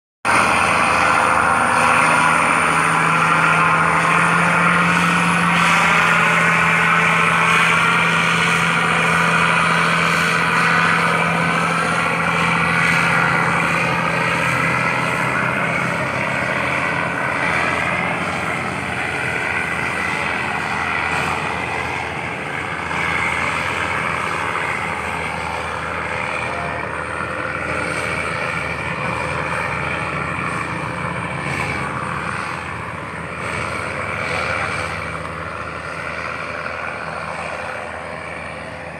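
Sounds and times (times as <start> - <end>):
boat diesel engine drone: 0.2 - 38.9.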